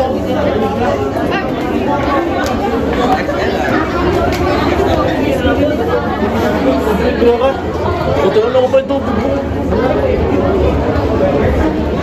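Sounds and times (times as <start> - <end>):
crowd babble in large hall: 0.0 - 12.0.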